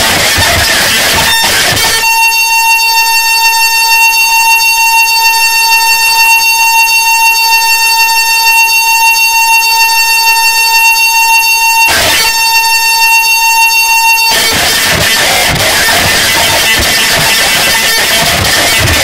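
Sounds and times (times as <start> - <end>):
harsh electronic buzzing drone: 0.0 - 19.0.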